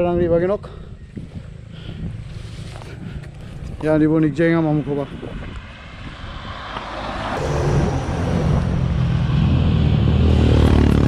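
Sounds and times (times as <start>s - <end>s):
motorcycle and truck engines approaching: 6.0s - 11.0s.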